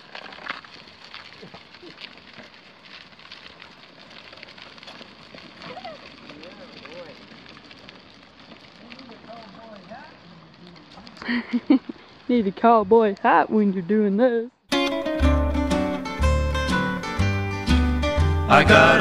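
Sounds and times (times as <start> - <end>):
cart wheels crackling on pavement: 0.0 - 19.0.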